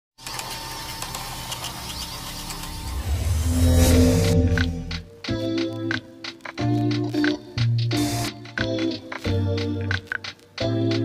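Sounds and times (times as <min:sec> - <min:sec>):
rapid mechanical ticks and clicks: 0:00.2 - 0:03.0
deep rumble: 0:02.8 - 0:05.2.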